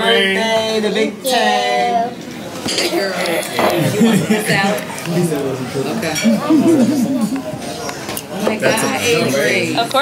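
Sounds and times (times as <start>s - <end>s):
dishes and cutlery clinking: 2.6s - 3.9s, 6.0s - 6.6s.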